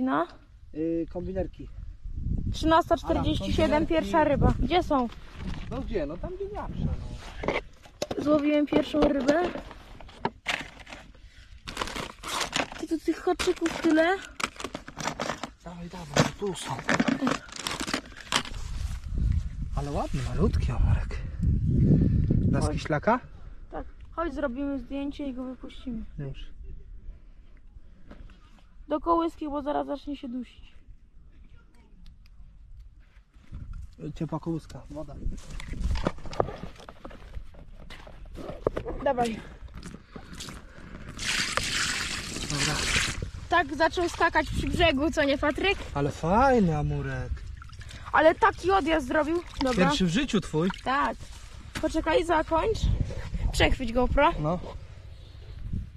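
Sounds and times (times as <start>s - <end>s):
plastic packets crinkling: 11.6s - 15.6s, 16.7s - 18.6s.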